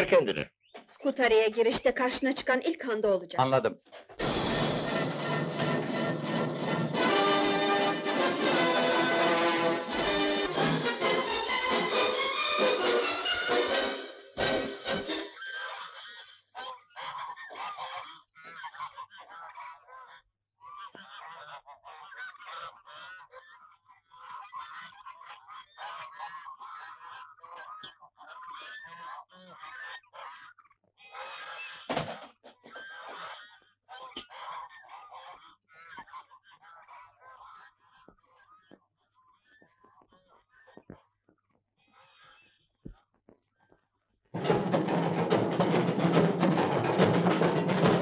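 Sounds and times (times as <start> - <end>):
geese honking: 4.2 - 23.4, 24.0 - 31.9, 32.7 - 38.8.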